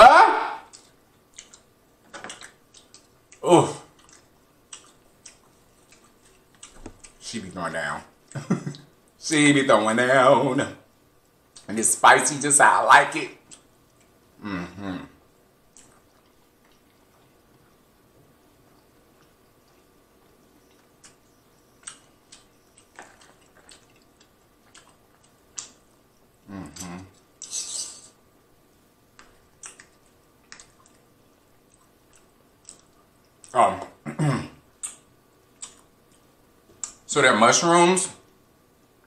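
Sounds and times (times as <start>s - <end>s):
wet chewing mouth sounds: 2.3s - 7.2s, 15.7s - 17.8s, 18.6s - 25.9s, 29.2s - 33.6s, 35.6s - 37.0s
person humming: 14.4s - 15.2s, 26.5s - 27.1s.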